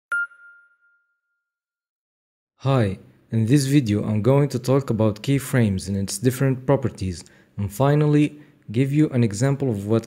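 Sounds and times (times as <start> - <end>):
bright chime ding: 0.1 - 1.4.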